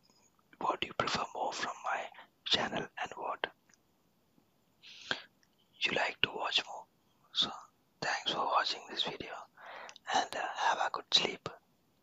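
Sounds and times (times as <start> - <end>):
person whispering: 0.6 - 3.6, 4.8 - 11.6.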